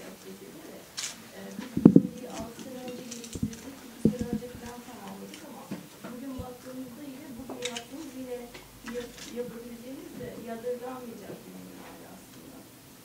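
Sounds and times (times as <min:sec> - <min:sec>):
person speaking: 0:00.0 - 0:12.8
china and cutlery clinking: 0:00.9 - 0:06.6.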